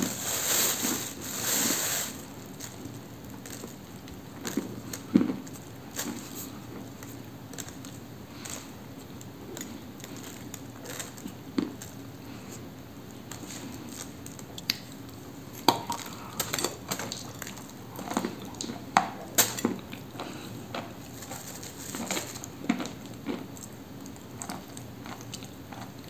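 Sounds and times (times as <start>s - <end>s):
crunchy clay being chewed: 2.5s - 15.2s, 15.8s - 26.0s.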